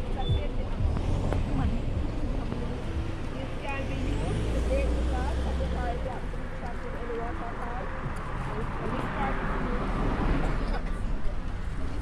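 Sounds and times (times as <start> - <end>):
car engine rumble: 0.0 - 12.0
faint voices talking: 0.0 - 12.0
road traffic passing: 0.0 - 12.0.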